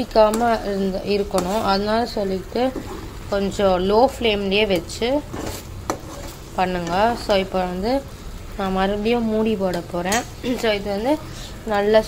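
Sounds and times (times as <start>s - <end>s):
woman speaking: 0.0s - 5.3s, 6.6s - 12.0s.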